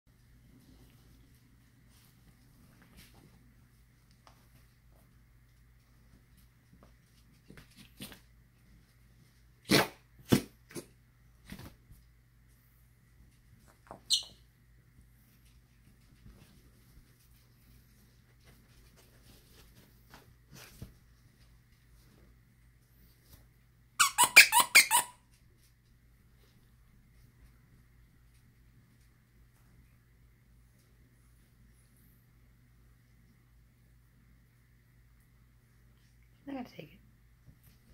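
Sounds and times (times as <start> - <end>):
squeaky toy squeaking: 24.0 - 25.2.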